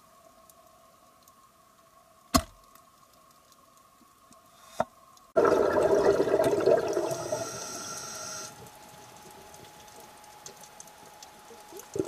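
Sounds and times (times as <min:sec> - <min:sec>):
underwater bubbles rushing: 0:05.4 - 0:07.9.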